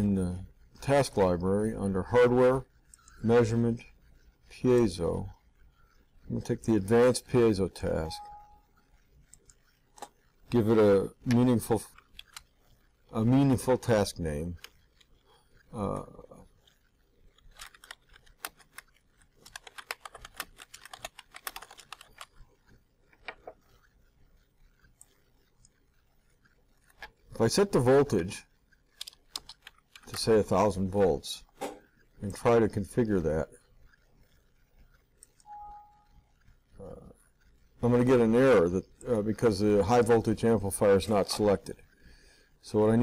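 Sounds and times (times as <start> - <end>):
computer keyboard typing: 4.8 - 28.2, 28.8 - 31.2, 34.3 - 36.3
computer alert beep: 8.0 - 8.7, 35.4 - 36.2.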